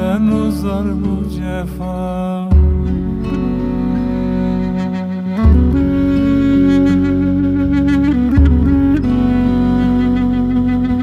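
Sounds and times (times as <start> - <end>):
acoustic guitars: 0.0 - 11.0
low bass line: 0.0 - 11.0
double-reed pipe melody: 2.6 - 11.0.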